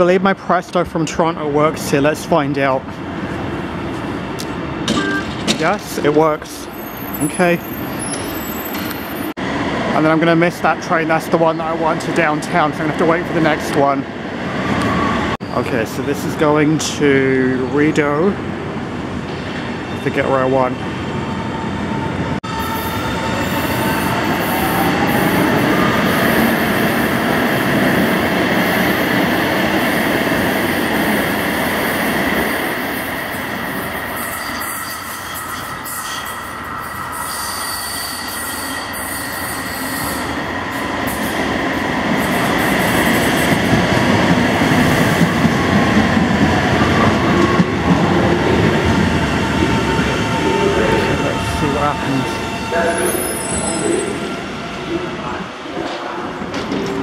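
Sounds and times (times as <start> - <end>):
train drawing in and stopping: 0.0 - 57.0
train wheel squeal: 6.6 - 9.3, 33.6 - 41.4, 50.3 - 54.6.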